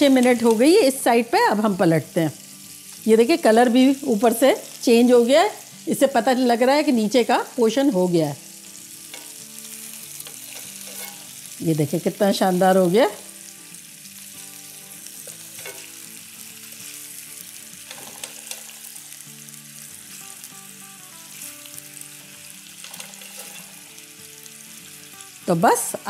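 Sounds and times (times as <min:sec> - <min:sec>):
food sizzling in oil: 0:00.0 - 0:26.0.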